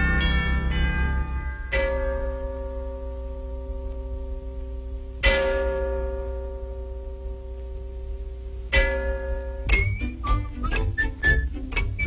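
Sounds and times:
large bell ringing: 0.0 - 9.8.

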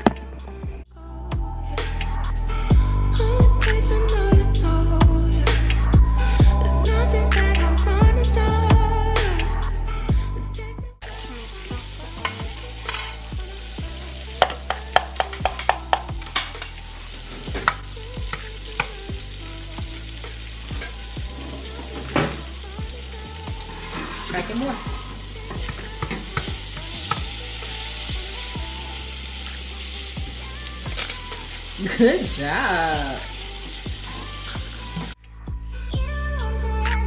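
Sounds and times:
food sizzling in pan: 11.0 - 35.2.

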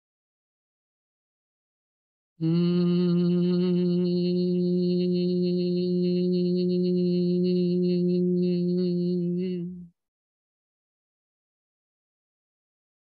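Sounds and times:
woman humming steady note: 2.4 - 9.9.

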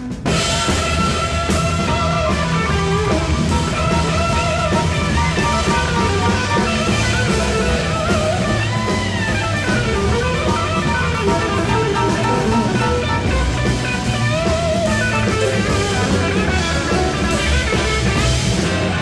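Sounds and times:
blues-rock band playing live: 0.0 - 19.0
lead electric guitar bent notes: 0.0 - 19.0.

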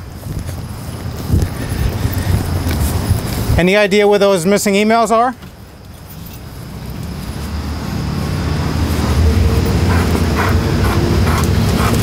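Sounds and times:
passing vehicle rumble: 0.0 - 12.0.

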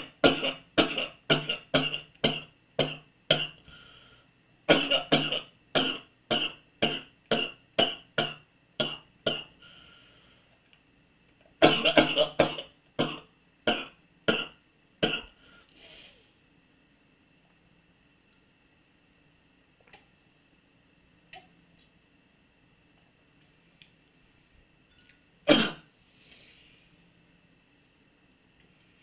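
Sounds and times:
man coughing: 11.6 - 15.3, 25.5 - 25.9.

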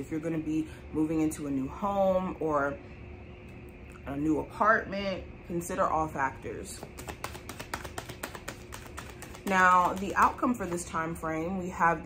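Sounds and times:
cards clicking: 6.8 - 10.8.

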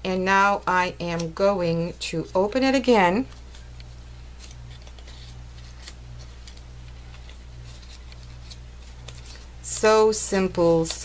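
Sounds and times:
steady low hum: 0.0 - 11.0
paper rustling and crackling: 2.2 - 11.0.

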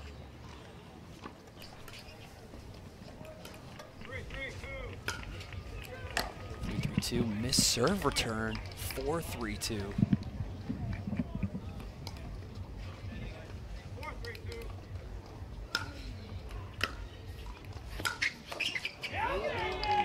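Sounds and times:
crowd murmur: 0.0 - 20.0.

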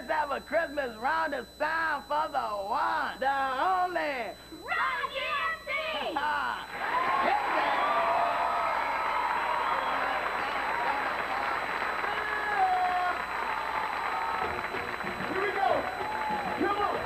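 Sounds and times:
audience applauding and cheering: 6.7 - 17.0.

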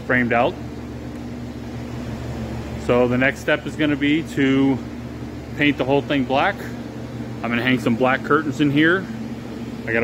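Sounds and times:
machine humming: 0.0 - 10.0
man speaking: 2.8 - 4.9, 5.5 - 6.8, 7.4 - 9.2, 9.8 - 10.0.

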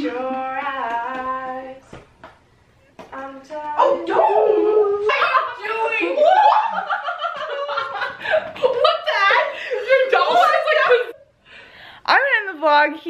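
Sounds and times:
long gliding vocal notes: 3.1 - 5.1
laughter: 5.1 - 11.2.

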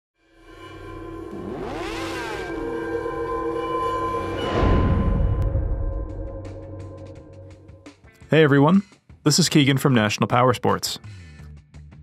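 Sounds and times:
sustained drone tones: 0.2 - 8.1
rising and falling sweep: 0.5 - 7.7.

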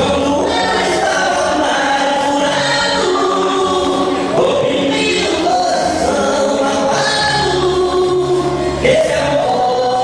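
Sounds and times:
steady bass line: 0.0 - 10.0
two men singing gospel: 0.0 - 10.0.

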